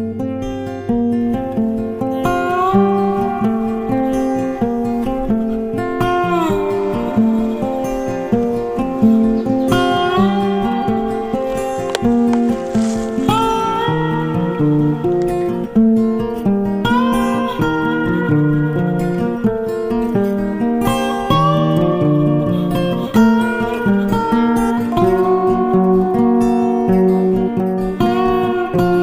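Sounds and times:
acoustic guitar melody: 0.0s - 29.0s.

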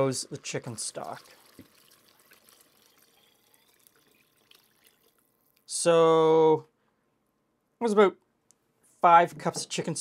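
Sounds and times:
faint liquid trickle: 0.0s - 6.0s.

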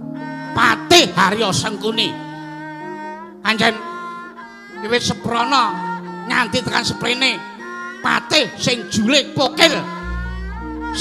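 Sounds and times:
gamelan sustained notes: 9.9s - 11.0s.

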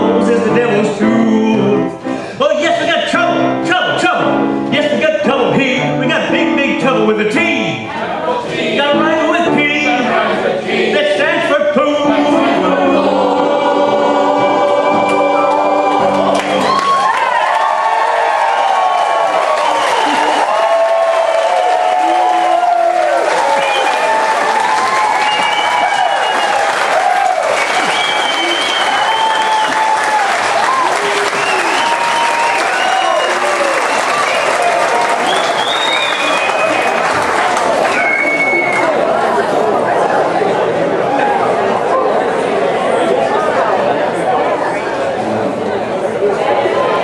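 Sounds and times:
crowd cheering and calling out: 11.9s - 47.0s
audience applauding: 15.1s - 39.1s.

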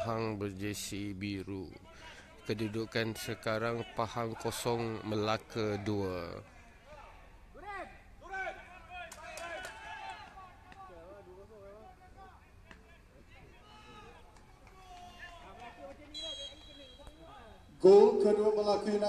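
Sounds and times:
high whistle tone: 16.2s - 17.2s.

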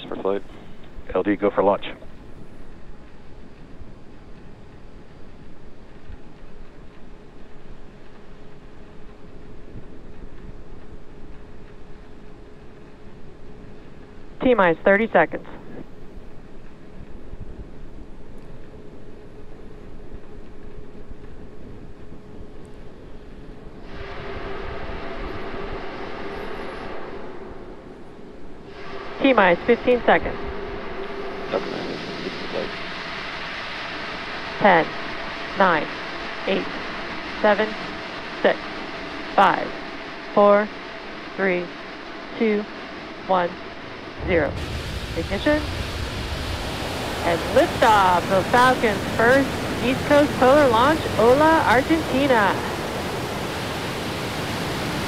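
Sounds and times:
faint steady hum: 0.0s - 55.0s
faint steady tone: 0.0s - 55.0s
low rumble: 0.0s - 55.0s
wind on microphone: 15.5s - 55.0s
hiss of venting propellant vapour: 28.7s - 40.3s, 44.2s - 55.0s.

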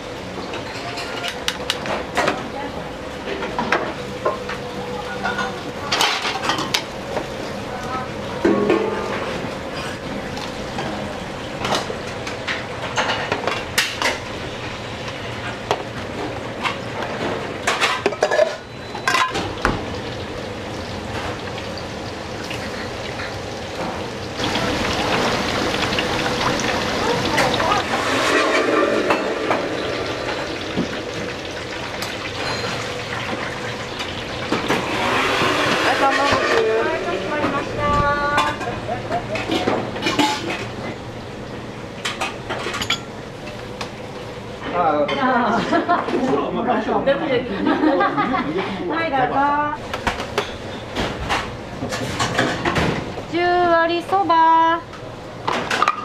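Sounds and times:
oil sizzling in deep fryer: 0.0s - 45.0s
metal lids and pans clinking: 8.4s - 10.0s, 16.6s - 19.5s, 27.3s - 30.6s, 32.3s - 32.9s, 35.7s - 36.8s, 38.3s - 40.7s, 55.5s - 56.0s.

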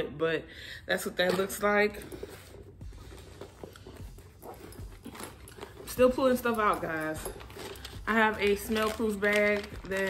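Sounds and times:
rummaging through handbag: 1.0s - 10.0s.

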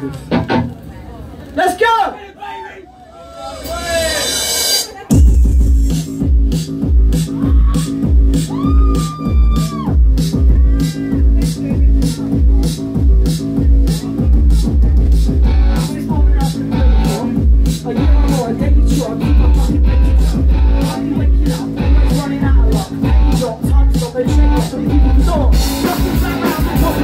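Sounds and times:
bass guitar: 0.0s - 1.0s, 5.1s - 27.0s
drum and cymbal hits: 3.4s - 27.0s
live rock band playing: 3.5s - 27.0s
kick drum: 5.1s - 15.6s.

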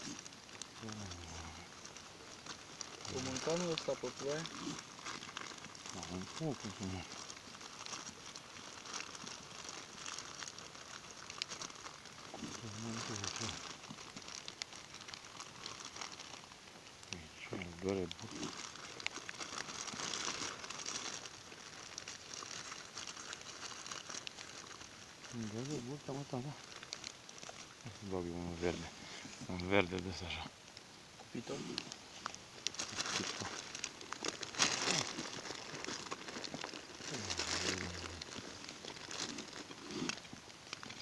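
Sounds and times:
person speaking: 0.8s - 1.7s, 3.1s - 4.8s, 5.9s - 7.2s, 12.4s - 13.6s, 17.1s - 18.6s, 25.3s - 26.6s, 27.8s - 30.6s, 31.2s - 31.9s, 37.0s - 38.7s.

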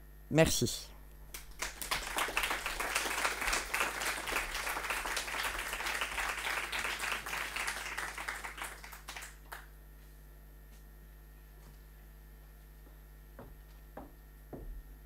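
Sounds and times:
audience applauding: 1.3s - 9.7s.

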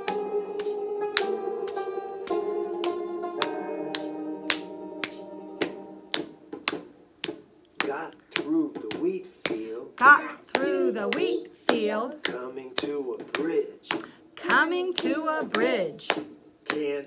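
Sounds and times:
held musical chord: 0.0s - 6.2s
sharp slaps: 2.3s - 9.7s, 10.5s - 17.0s.

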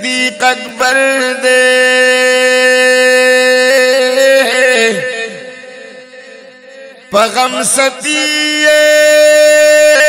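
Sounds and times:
man singing long note: 0.0s - 10.0s.

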